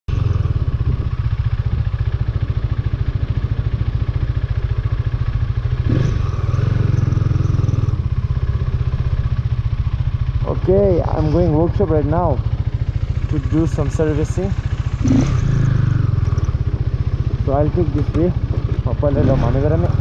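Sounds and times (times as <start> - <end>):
motorcycle engine running: 0.1 - 20.0.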